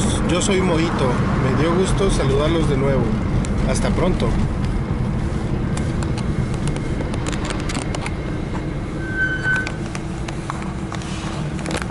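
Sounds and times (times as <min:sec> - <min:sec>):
car engine and road noise: 0:00.0 - 0:11.9
short high beep: 0:09.0 - 0:09.7.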